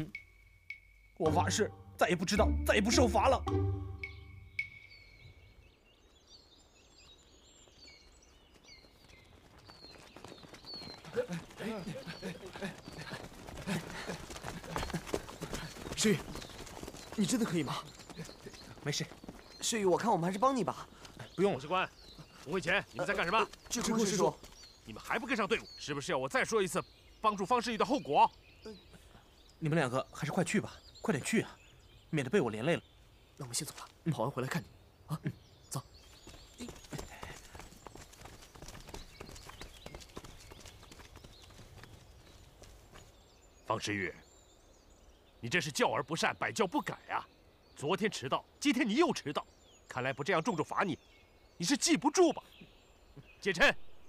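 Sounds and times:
people running on dirt path: 6.6 - 26.4, 35.9 - 43.5
runners' short voiced sounds: 10.9 - 16.4.

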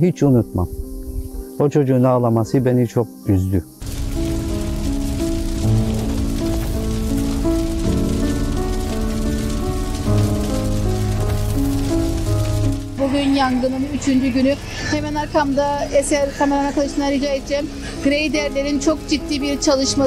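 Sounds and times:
forest fire crackling: 0.0 - 20.0
slow held-note music: 0.0 - 20.0
woman speaking: 13.0 - 20.0.

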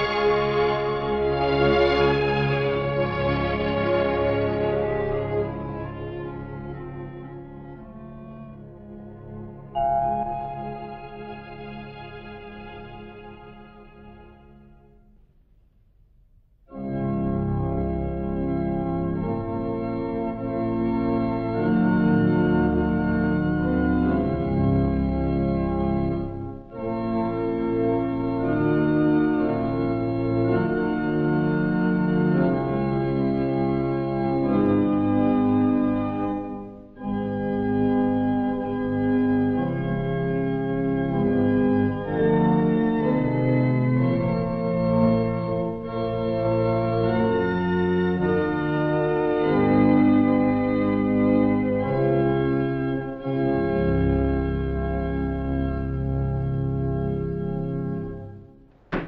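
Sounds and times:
church pipe organ chords: 0.0 - 15.2, 16.6 - 59.0.

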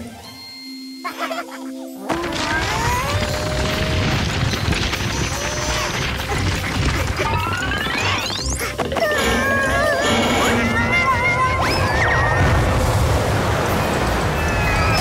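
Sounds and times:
comic cartoon music: 1.0 - 12.8
cartoon sound effects: 5.0 - 12.6.

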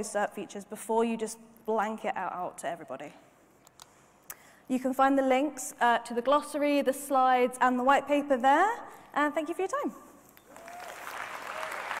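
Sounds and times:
audience applauding: 10.5 - 12.0.

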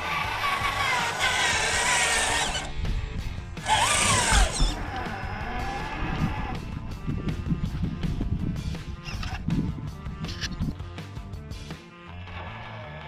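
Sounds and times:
background music: 0.0 - 13.0
electric motor and gears whining: 0.0 - 13.0.

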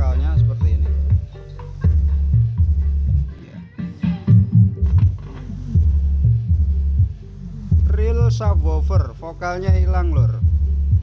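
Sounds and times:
deep bass notes: 0.0 - 11.0.

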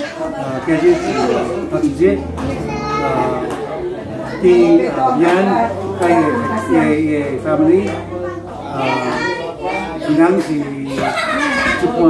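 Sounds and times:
voices talking in conversation: 0.0 - 12.0.

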